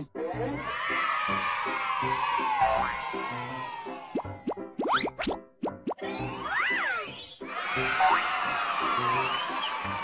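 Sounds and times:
cartoon plop sound effects: 0:04.1 - 0:06.1.

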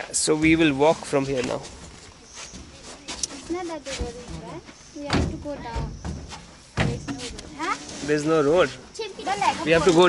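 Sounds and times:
people talking: 0:02.5 - 0:06.0, 0:06.8 - 0:10.0
sharp knocks or thumps: 0:03.4 - 0:07.3.

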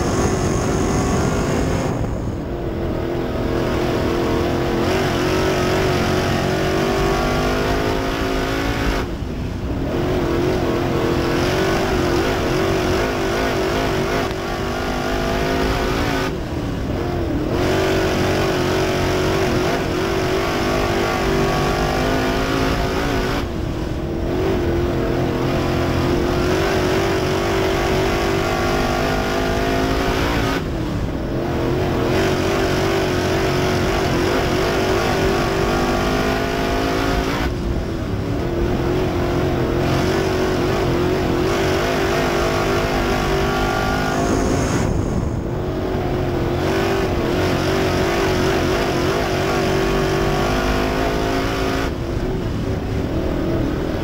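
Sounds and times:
race car engine accelerating: 0:00.0 - 0:54.0.

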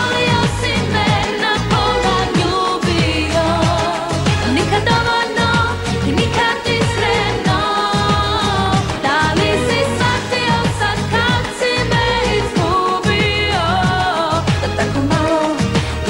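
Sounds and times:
driving drum beat: 0:00.0 - 0:16.0
woman singing pop song: 0:00.0 - 0:16.0.

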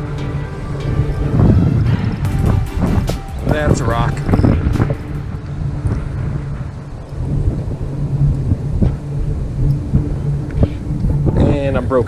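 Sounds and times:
steady low hum: 0:00.0 - 0:12.0
wind buffeting microphone: 0:00.0 - 0:12.0.

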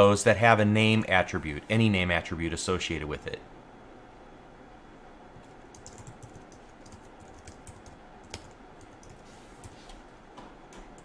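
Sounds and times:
computer keyboard typing: 0:05.4 - 0:09.8.

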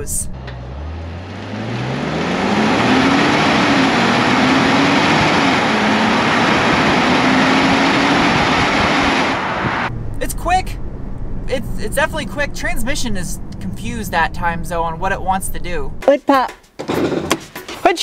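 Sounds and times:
car engine accelerating: 0:00.2 - 0:15.0
tyre noise on road: 0:00.4 - 0:11.5
wind rushing: 0:02.4 - 0:11.6.

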